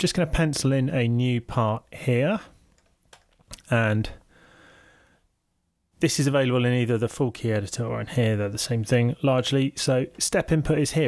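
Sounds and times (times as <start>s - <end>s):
man speaking: 0.0s - 2.6s, 3.6s - 4.2s, 6.0s - 11.0s
man breathing faintly: 4.2s - 5.3s.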